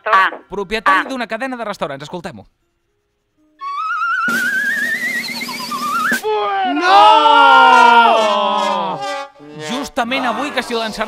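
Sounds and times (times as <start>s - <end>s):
whistle-like rising tone: 3.6s - 6.3s.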